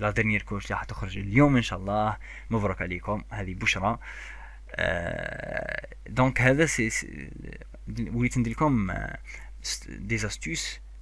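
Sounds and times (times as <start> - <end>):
man stuttering words: 4.7 - 10.6.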